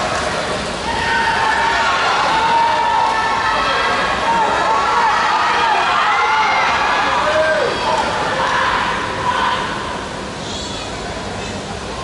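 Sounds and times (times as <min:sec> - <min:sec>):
crowd noise: 0:00.0 - 0:12.0
spectators shouting long calls: 0:00.8 - 0:10.0.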